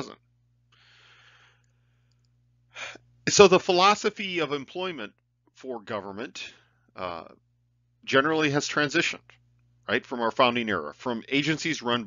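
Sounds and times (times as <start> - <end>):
faint steady hum: 0.0 - 12.0
man breathing in: 0.7 - 3.0.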